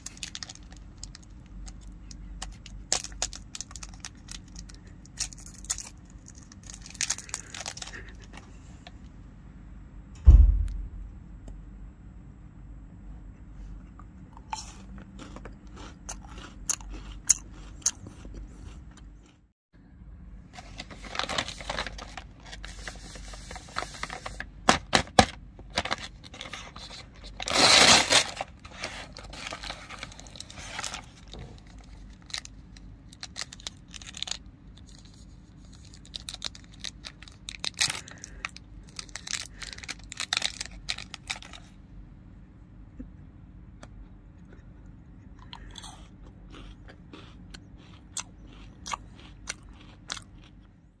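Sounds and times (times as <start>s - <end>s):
plastic bag crinkling: 0.0s - 8.4s, 20.6s - 24.6s, 25.7s - 41.7s
crunching crisp wafer: 0.0s - 8.5s, 14.5s - 19.4s, 25.8s - 41.8s, 45.5s - 50.7s
soft chewing: 13.6s - 19.5s, 43.8s - 50.9s
plastic bag ripping open: 20.7s - 24.4s, 25.8s - 32.5s, 35.7s - 41.7s.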